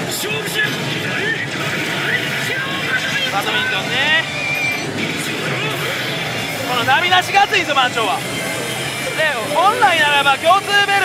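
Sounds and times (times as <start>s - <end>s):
background music: 0.0s - 11.0s
gaming machine sound effects: 1.4s - 11.0s
high electronic tone: 3.3s - 11.0s.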